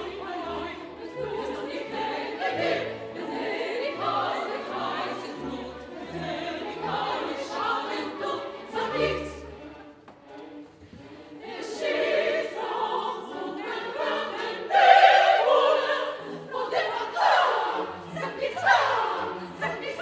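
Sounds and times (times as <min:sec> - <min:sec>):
women's opera chorus singing: 0:00.0 - 0:10.0, 0:10.9 - 0:20.0
orchestra: 0:00.0 - 0:20.0.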